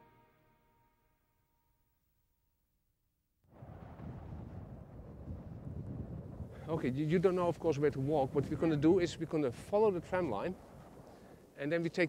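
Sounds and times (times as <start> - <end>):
wind buffeting microphone: 3.6 - 11.5.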